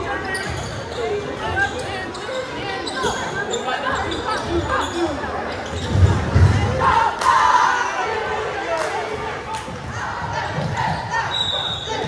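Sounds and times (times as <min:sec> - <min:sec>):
spectator chatter: 0:00.0 - 0:12.0.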